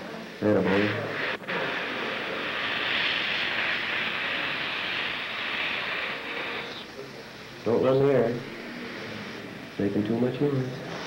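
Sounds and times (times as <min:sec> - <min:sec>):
dental air syringe hissing: 0:02.1 - 0:06.9.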